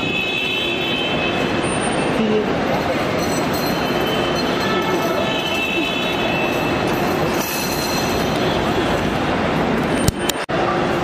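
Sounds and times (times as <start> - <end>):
outdoor crowd din: 0.0 - 11.0
traffic: 0.0 - 11.0.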